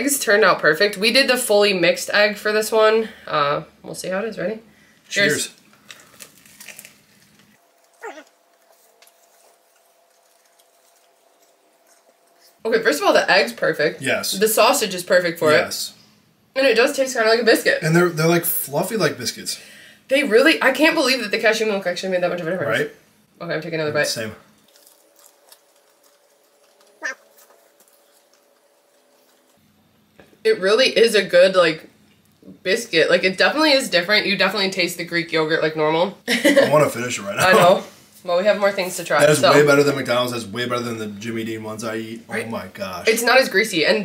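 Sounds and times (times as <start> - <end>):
faint room hum: 0.0 - 44.0
people chewing: 5.2 - 12.7, 24.6 - 30.3.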